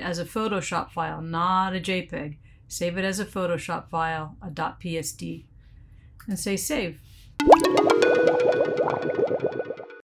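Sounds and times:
bouncy plinking notes: 7.4 - 10.0.

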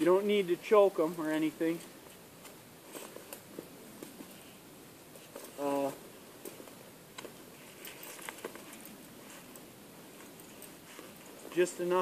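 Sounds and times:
rustling in dry leaves: 0.3 - 12.0.

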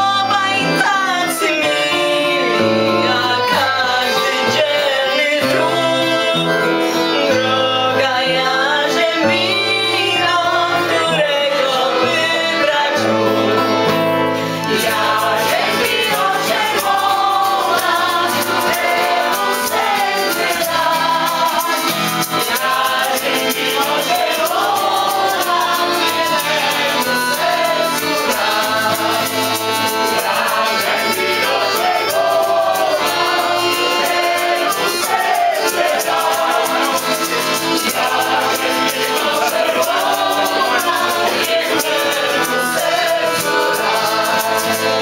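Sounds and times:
acoustic guitar strumming: 0.0 - 45.0
group of people singing: 0.0 - 45.0
maracas shaking: 14.6 - 45.0.

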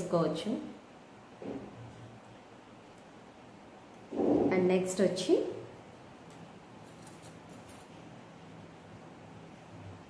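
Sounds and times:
jewellery clicking: 6.3 - 7.9.

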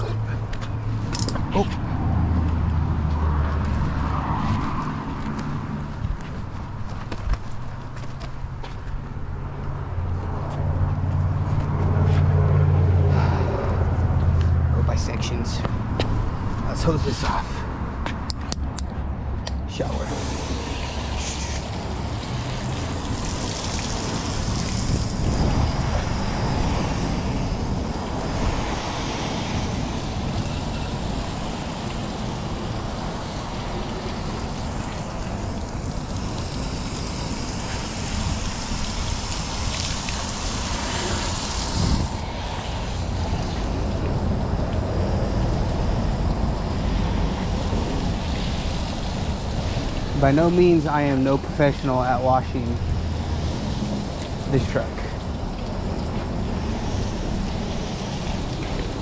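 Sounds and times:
wash tools clicking and scraping: 0.6 - 1.8
hose spray nozzle hissing: 19.7 - 59.0.

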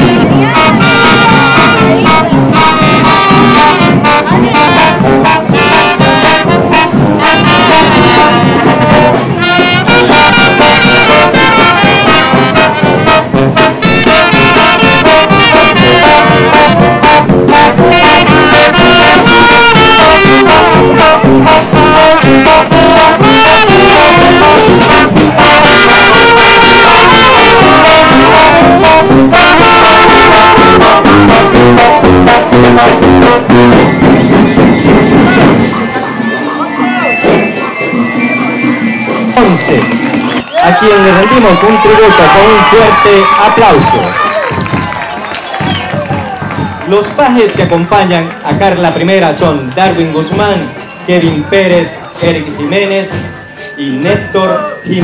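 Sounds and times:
brass band playing: 0.0 - 55.0.

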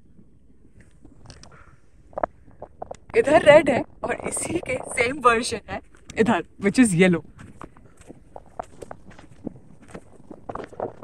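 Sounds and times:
footsteps on sandy dirt path: 7.2 - 11.0.

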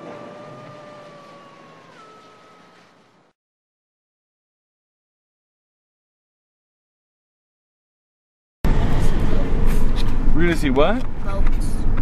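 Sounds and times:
two held tones: 0.0 - 3.0
rushing noise: 0.0 - 3.3.

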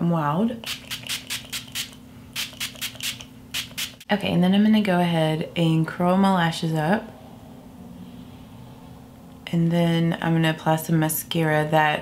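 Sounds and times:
spray bottle hisses: 0.7 - 4.0.

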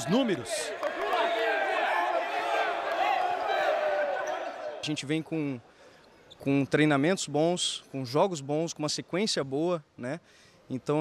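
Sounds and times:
young men shouting and cheering: 0.0 - 4.8.

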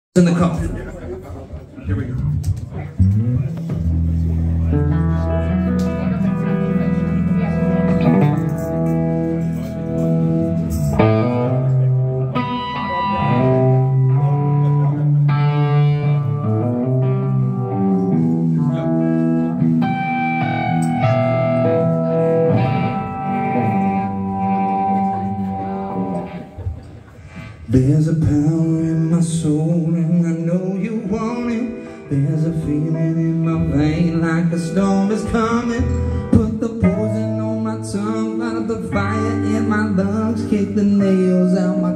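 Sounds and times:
bass guitar: 0.2 - 41.9
electric guitar chords and lines: 2.2 - 41.9.

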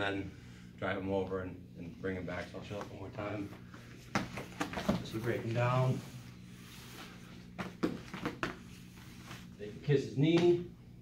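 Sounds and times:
low room hum: 0.0 - 11.0
bodies and shoes knocking on mat: 4.1 - 5.1, 7.6 - 8.6.

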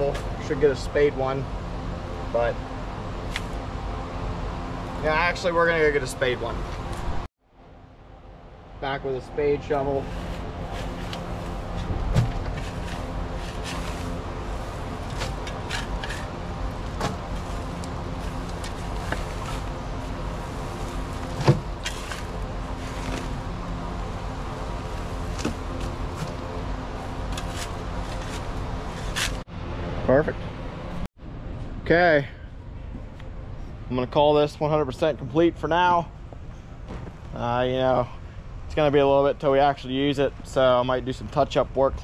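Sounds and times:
shovel scraping dirt: 10.0 - 14.3, 14.9 - 19.7, 21.2 - 23.4, 27.2 - 29.4.

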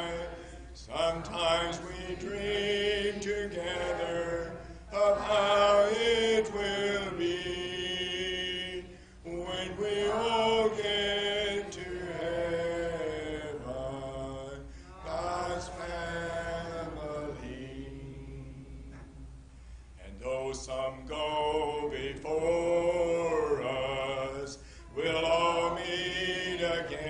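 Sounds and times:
congregation singing a hymn: 0.0 - 19.3, 20.0 - 27.0.

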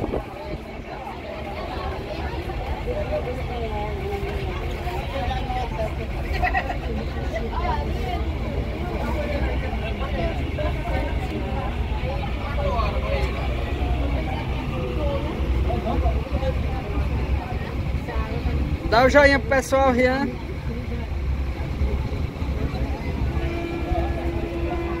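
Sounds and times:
boat engine rumble: 0.0 - 25.0
passengers chattering: 0.0 - 25.0.

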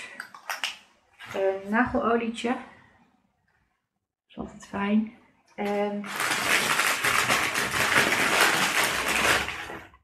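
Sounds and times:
packaging rustling and crinkling: 6.0 - 10.0.

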